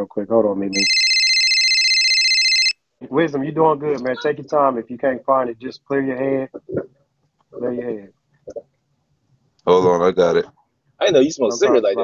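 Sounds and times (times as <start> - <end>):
electronic phone ringtone: 0.8 - 2.8.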